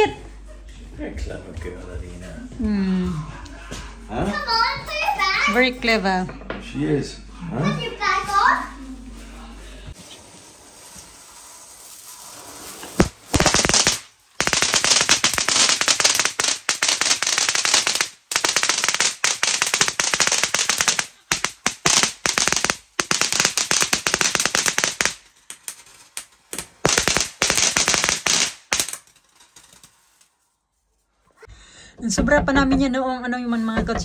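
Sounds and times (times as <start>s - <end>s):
ground fireworks crackling: 8.3s - 30.4s
firework sharp crack: 10.8s - 29.2s.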